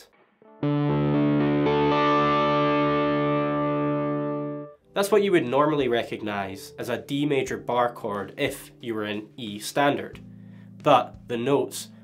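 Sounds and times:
electric guitar chord strummed slowly: 0:00.4 - 0:04.8.

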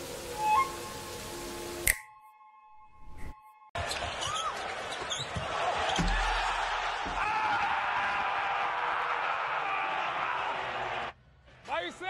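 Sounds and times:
basketball arena crowd noise: 0:03.8 - 0:12.0.

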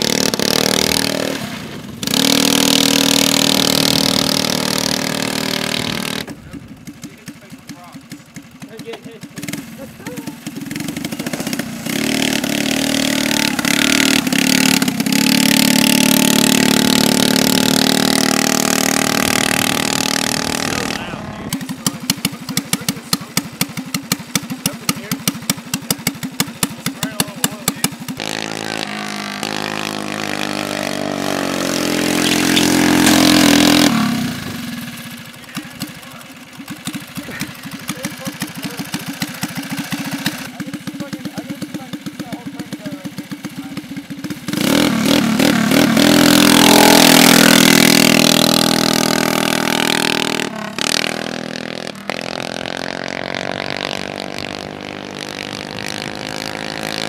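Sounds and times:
small gasoline engine revving: 0:00.0 - 0:57.0.

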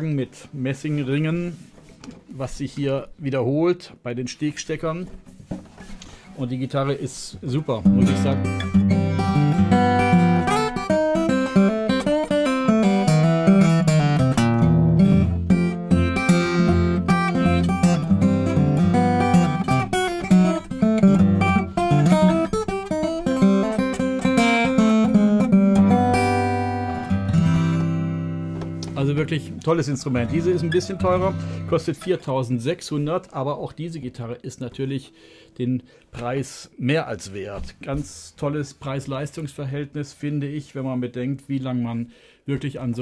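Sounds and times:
fingerstyle acoustic guitar: 0:07.8 - 0:32.1.

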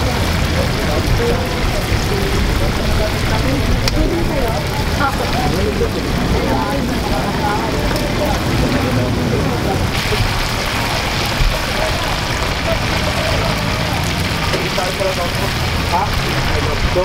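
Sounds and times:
background voices: 0:00.0 - 0:17.0
oil sizzling in a wok: 0:09.9 - 0:17.0.

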